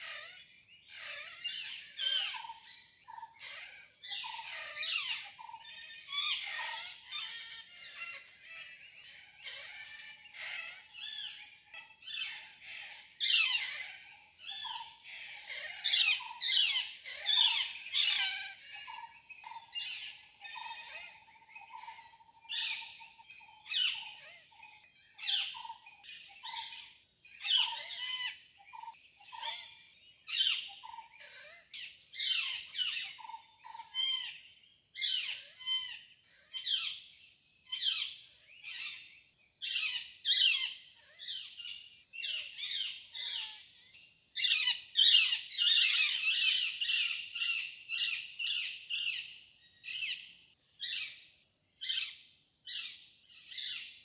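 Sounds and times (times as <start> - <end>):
birds squawking and chirping: 0.0 - 54.0.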